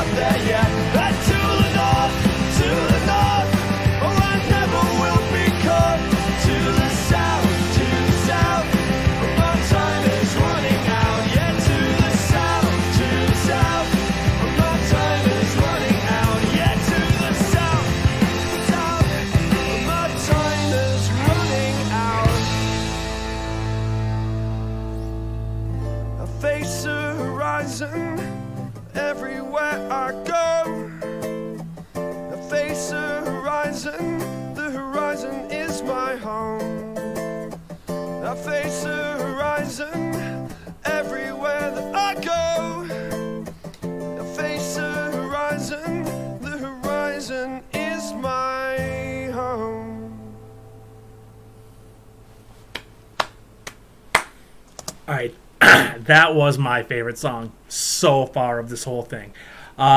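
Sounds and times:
keyboard chords: 0.0 - 27.6
acoustic guitar strumming: 0.0 - 52.3.

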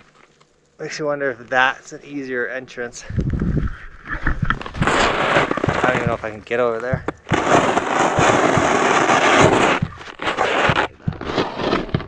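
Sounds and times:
snow crunching and crackling: 4.2 - 12.0
snowboard scraping through powder: 4.7 - 6.4, 7.3 - 12.0.

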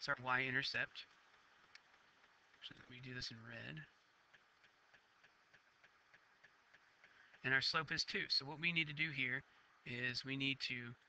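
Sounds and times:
faint evenly spaced ticks: 0.0 - 11.0.

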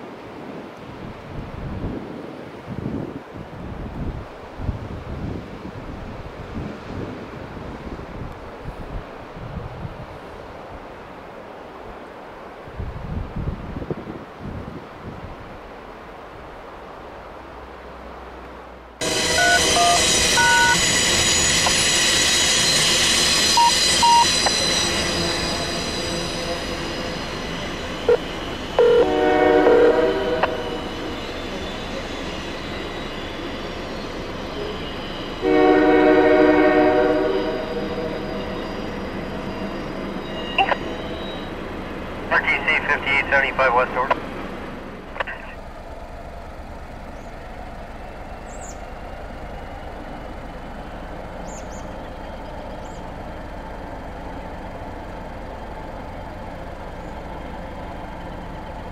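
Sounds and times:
diesel locomotives running: 0.0 - 58.9
wind on microphone: 0.4 - 10.2, 12.6 - 15.5
locomotive air horn blasts: 19.0 - 21.0, 28.8 - 31.2, 35.4 - 38.6.

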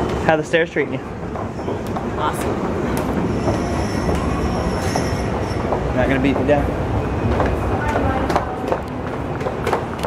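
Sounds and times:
airport terminal hubbub: 0.0 - 10.0
footsteps down a staircase: 0.0 - 10.0.

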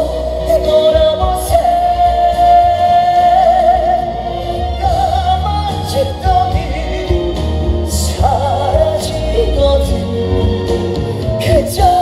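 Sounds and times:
backing track with bass and drums: 0.0 - 12.0
man singing into microphone: 0.0 - 12.0.

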